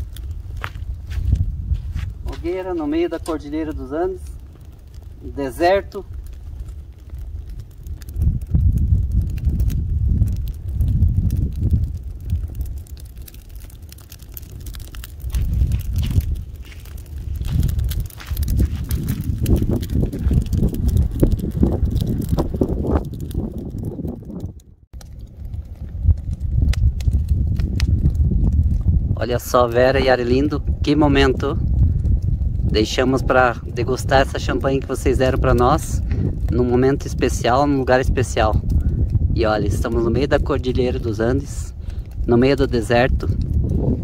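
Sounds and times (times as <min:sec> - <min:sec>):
campfire crackling: 0:00.0 - 0:44.0
wind rumbling on microphone: 0:00.0 - 0:44.0.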